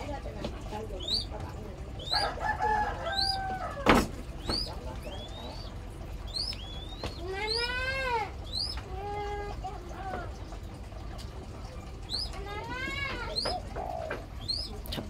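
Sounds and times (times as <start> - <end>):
long arching bird calls: 0.6 - 15.0.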